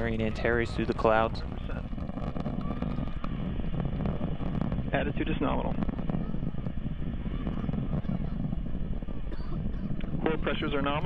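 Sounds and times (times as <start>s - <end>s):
rocket engines crackling rumble: 0.0s - 11.0s.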